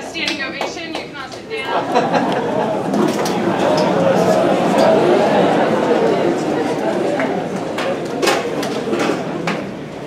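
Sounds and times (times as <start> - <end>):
group clapping: 0.0 - 9.6
low crowd murmur: 0.0 - 10.0.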